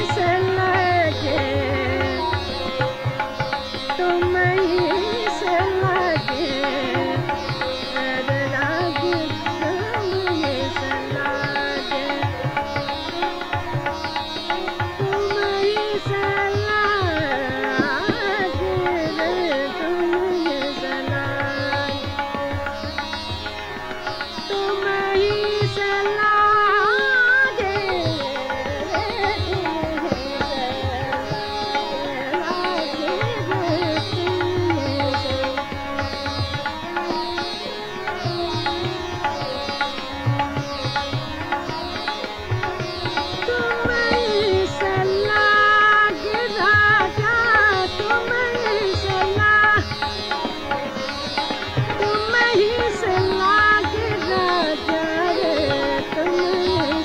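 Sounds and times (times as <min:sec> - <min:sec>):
woman singing: 0:00.0 - 0:13.5, 0:14.9 - 0:22.8, 0:24.4 - 0:37.4, 0:42.7 - 0:57.0
plucked string accompaniment: 0:00.0 - 0:57.0
tabla strokes: 0:00.0 - 0:57.0.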